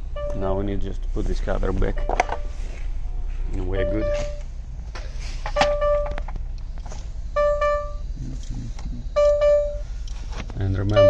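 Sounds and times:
low hum: 0.0 - 11.0
electronic beep: 7.3 - 8.1, 9.1 - 9.8.

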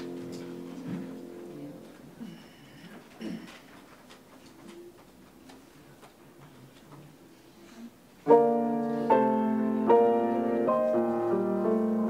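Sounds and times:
people sitting in upholstered chairs: 0.0 - 12.0.

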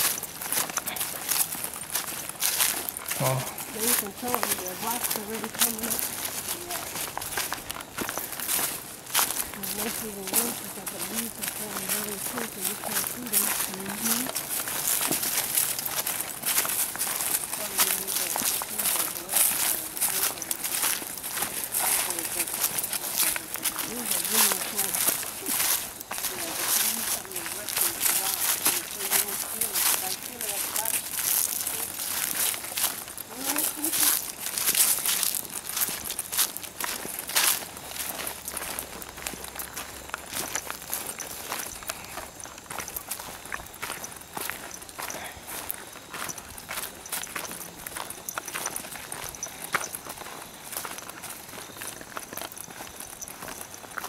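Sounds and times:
footsteps crunching dry leaves: 0.0 - 54.0.

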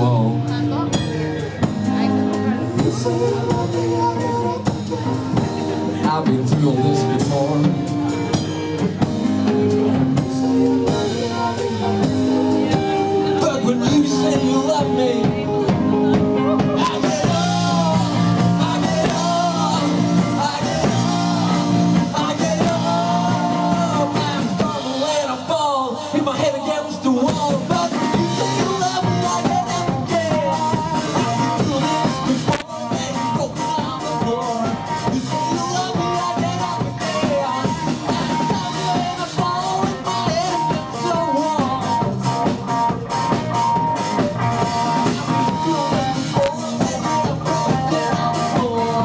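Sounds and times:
drum kit beat: 0.0 - 25.5, 27.1 - 49.0
electric bass: 0.0 - 49.0
electric guitar: 0.0 - 49.0.

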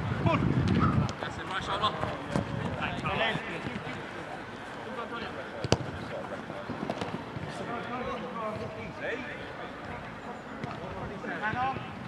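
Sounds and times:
football kick thud: 5.6 - 6.0.

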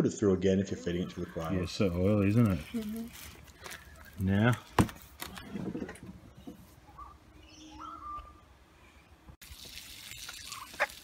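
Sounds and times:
faint bird chirps: 6.3 - 9.2.

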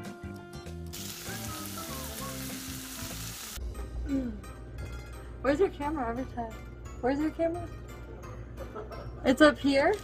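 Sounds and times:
background music: 0.0 - 10.0
food sizzling in a frying pan: 0.8 - 3.6.

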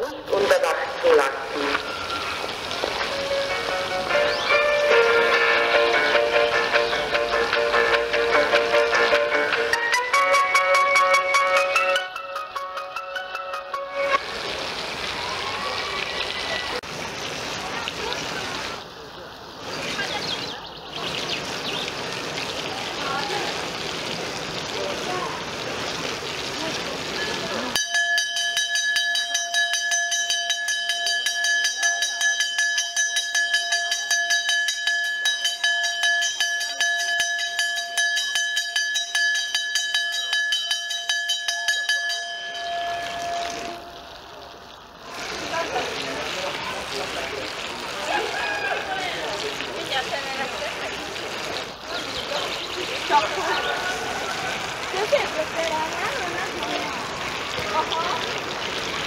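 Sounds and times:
crowd chatter at swimming pool: 13.3 - 28.0, 41.6 - 59.0
large signal bell ringing: 27.8 - 44.1.

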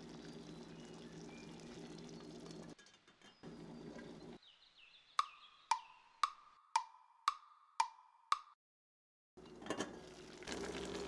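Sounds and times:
wood-block ticks: 5.2 - 8.6.

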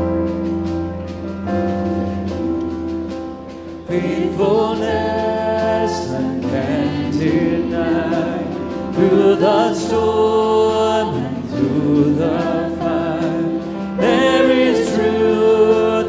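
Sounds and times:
instrumental accompaniment: 0.0 - 16.0
voices singing together: 3.9 - 16.0.

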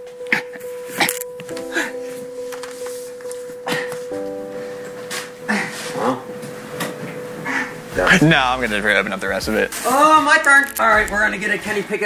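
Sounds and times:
music chords: 0.0 - 12.0
long held music note: 1.3 - 10.2.

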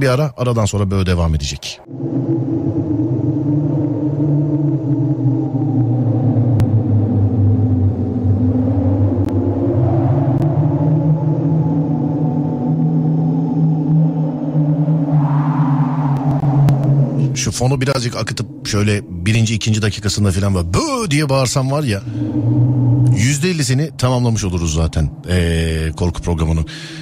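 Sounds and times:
low ambient music drone: 1.6 - 27.0.

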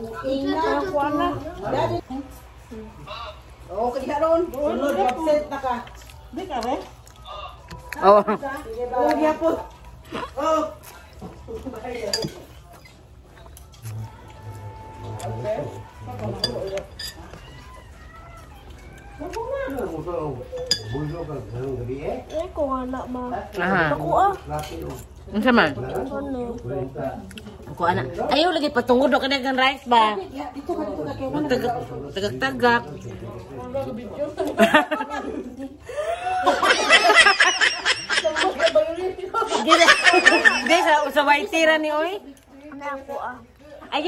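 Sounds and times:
fork clinking on plate: 12.0 - 12.6, 16.2 - 17.4, 20.5 - 22.5
people laughing: 34.3 - 41.1
people talking: 34.4 - 44.0.

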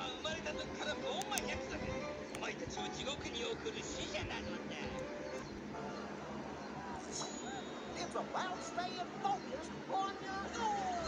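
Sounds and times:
background music: 0.0 - 11.0
television voices: 0.0 - 11.0
sharp clicks: 1.0 - 2.6.

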